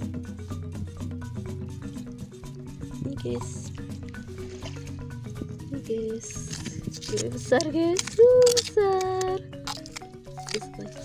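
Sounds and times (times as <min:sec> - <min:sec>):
steady low bass tone: 0:00.0 - 0:08.0
background music with held notes: 0:00.0 - 0:11.0.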